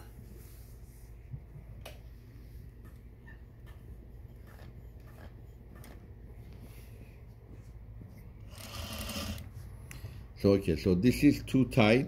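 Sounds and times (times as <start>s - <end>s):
sewing machine motor humming: 8.4s - 9.5s.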